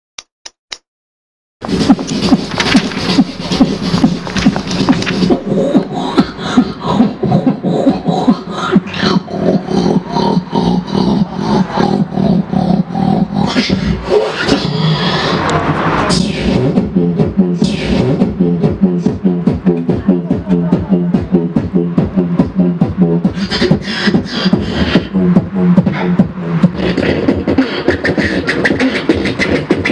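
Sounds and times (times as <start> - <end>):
beatboxed vocal percussion: 1.6 - 29.9
whooshing sweeps: 1.7 - 16.8.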